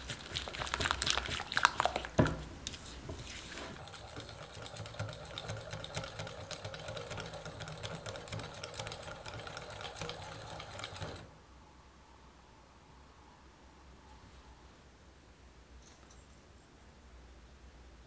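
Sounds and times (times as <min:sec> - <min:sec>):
whisk ticking against glass bowl: 0:03.8 - 0:11.3.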